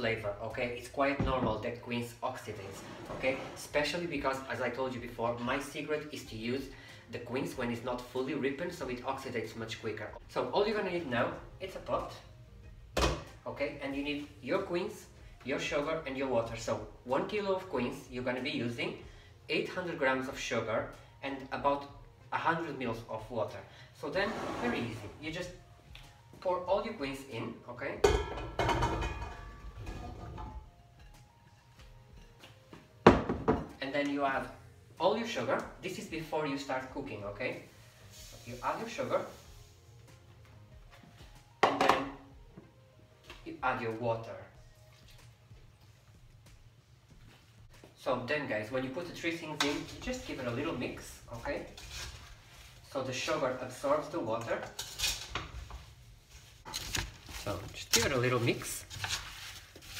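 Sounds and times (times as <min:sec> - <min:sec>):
wooden spoon scraping pot: 0:02.6 - 0:03.8, 0:24.1 - 0:25.3.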